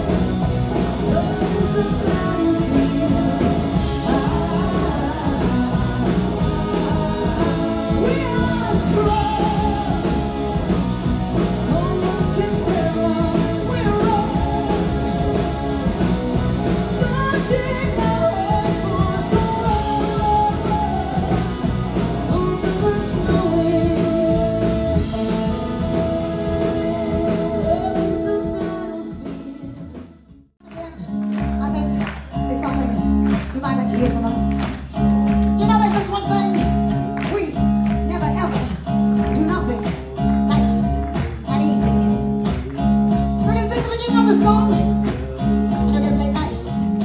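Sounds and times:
electric guitar long held note: 0.0 - 30.2
woman singing lead: 0.0 - 42.2, 43.4 - 47.0
live rock band playing: 0.0 - 47.0.

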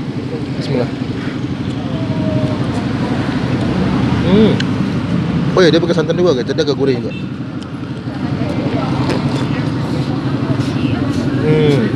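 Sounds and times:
road traffic rumble: 0.0 - 11.9.

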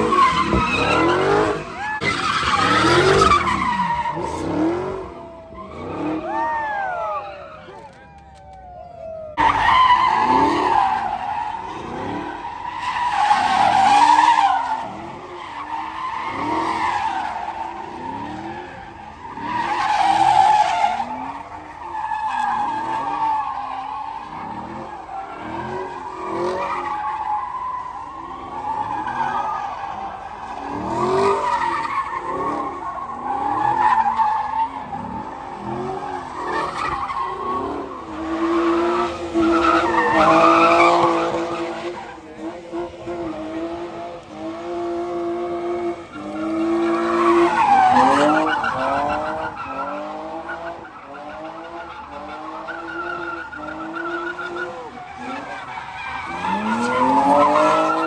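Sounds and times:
car engines revving: 0.0 - 58.0
tires screeching: 0.0 - 58.0.

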